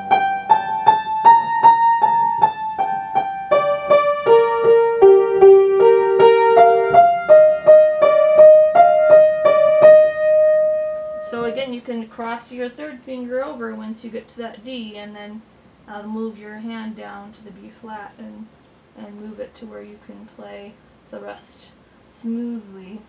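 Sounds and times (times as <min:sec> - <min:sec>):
piano melody: 0:00.0 - 0:11.7.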